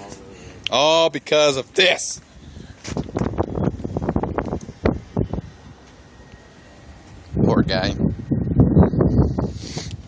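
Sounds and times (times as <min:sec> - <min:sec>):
wind buffeting microphone: 0:02.2 - 0:10.0.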